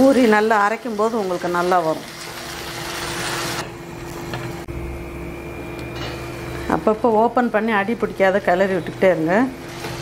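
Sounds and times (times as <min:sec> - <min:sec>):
food sizzling in a pan: 0:00.0 - 0:03.6.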